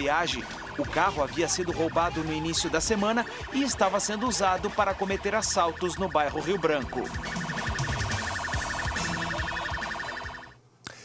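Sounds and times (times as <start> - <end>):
electronic alarm tone pulsing: 0.0 - 10.6.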